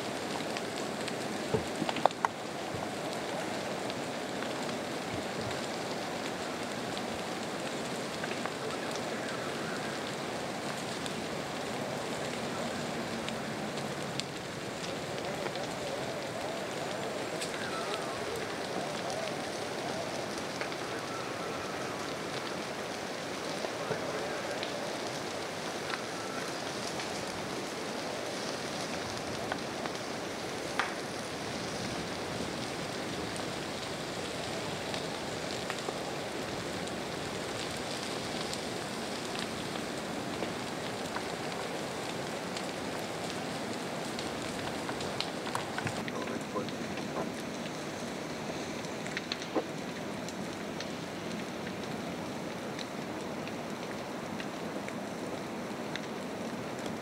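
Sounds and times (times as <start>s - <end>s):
wildfire crackling and popping: 0.0s - 57.0s.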